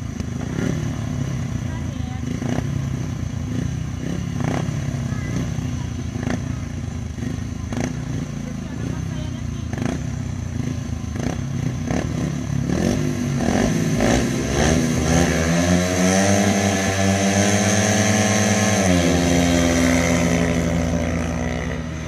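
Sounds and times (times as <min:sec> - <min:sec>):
motorcycle engines revving: 0:00.0 - 0:22.0.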